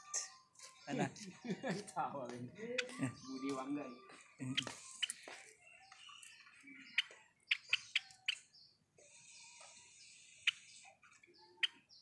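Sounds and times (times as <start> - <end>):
sparrow chirping: 0.0 - 12.0.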